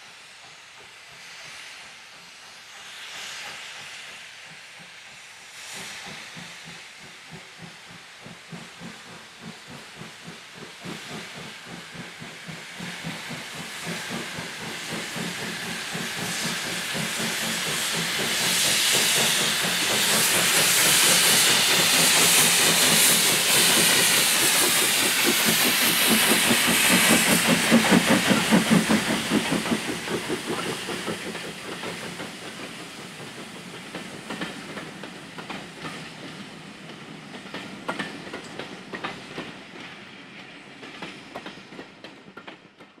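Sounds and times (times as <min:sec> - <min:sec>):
steam locomotive hiss and exhaust: 0:00.0 - 0:43.0.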